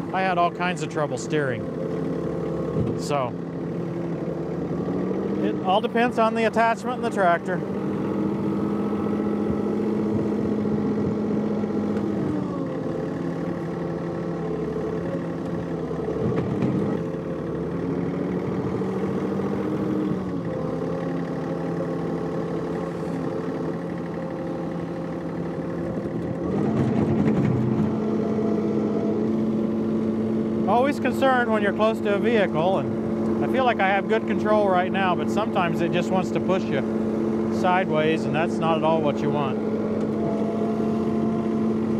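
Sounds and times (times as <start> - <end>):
tractor diesel engine running: 0.0 - 41.9.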